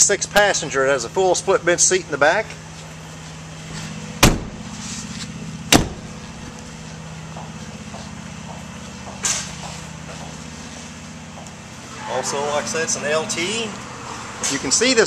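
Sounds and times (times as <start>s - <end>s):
truck engine idling: 0.0s - 15.0s
truck doors shutting: 3.7s - 6.6s.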